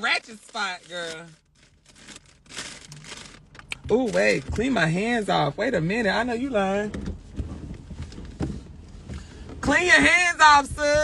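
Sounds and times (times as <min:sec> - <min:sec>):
low steady rumble: 0:00.0 - 0:11.0
rustling: 0:00.2 - 0:04.5
soft knocks inside car: 0:06.8 - 0:09.8.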